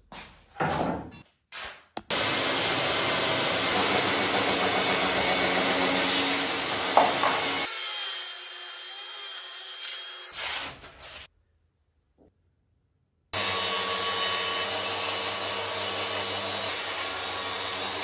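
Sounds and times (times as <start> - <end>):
track saw cutting wood: 2.1 - 10.4, 13.4 - 18.0.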